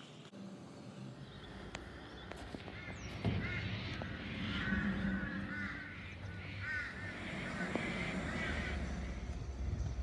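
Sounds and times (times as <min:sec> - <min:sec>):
birds chirping: 0:00.0 - 0:10.0
low rumble: 0:00.4 - 0:10.0.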